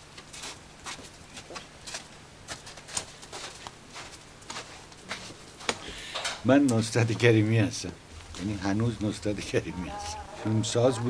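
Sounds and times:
footsteps on snow: 0.4 - 5.8.

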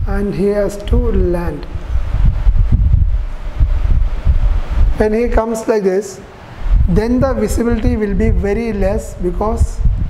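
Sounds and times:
wind buffeting microphone: 0.0 - 5.5, 6.4 - 10.0.

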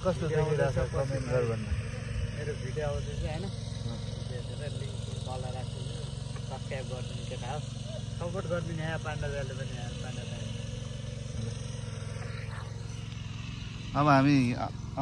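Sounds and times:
men talking: 0.0 - 12.3, 13.8 - 15.0.

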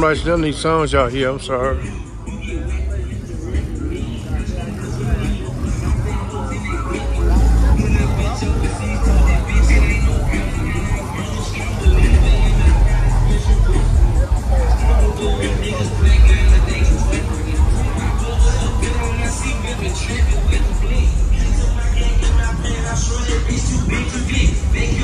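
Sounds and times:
loud bass-heavy music: 0.0 - 25.0
people talking: 0.0 - 25.0.

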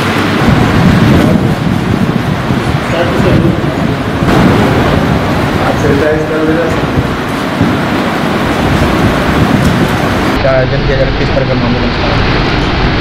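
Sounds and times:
loud steady background noise: 0.0 - 13.0.

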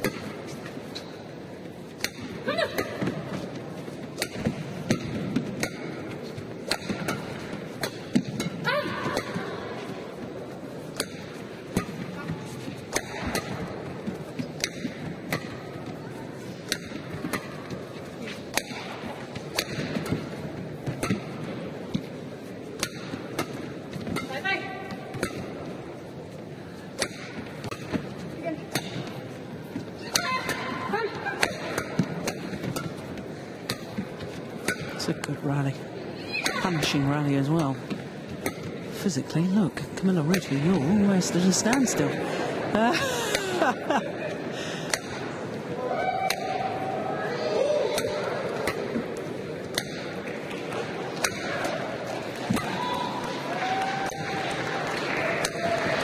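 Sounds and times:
racquets striking shuttlecock: 0.0 - 35.4, 36.4 - 39.0, 40.0 - 42.0, 44.8 - 45.6, 46.2 - 46.8, 47.9 - 53.4, 55.4 - 55.7
crowd murmur: 24.6 - 56.0.

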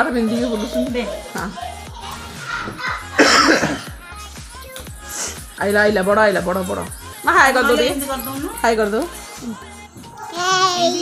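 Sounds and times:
quiet background music: 0.0 - 11.0
person coughing: 3.2 - 4.0.

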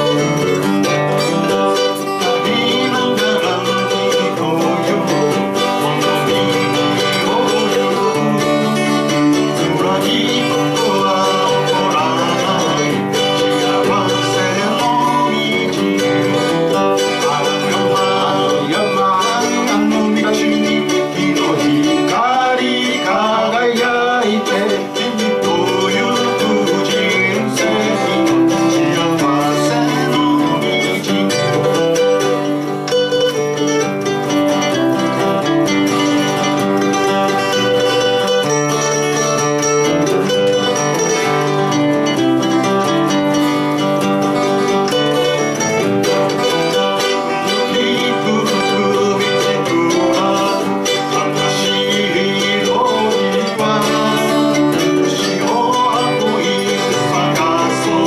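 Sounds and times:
acoustic guitar: 0.0 - 58.0
plucked string instrument: 0.0 - 58.0.

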